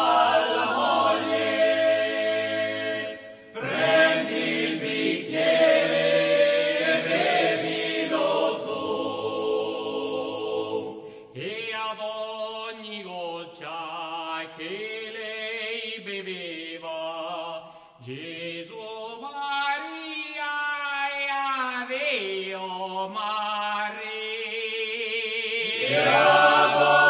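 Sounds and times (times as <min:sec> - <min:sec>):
male choir singing a cappella: 0:00.0 - 0:20.1, 0:21.0 - 0:27.0.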